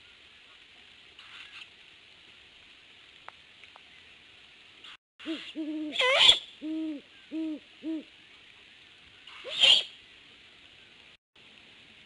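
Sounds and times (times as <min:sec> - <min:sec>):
owl hooting: 0:09.3 - 0:09.9.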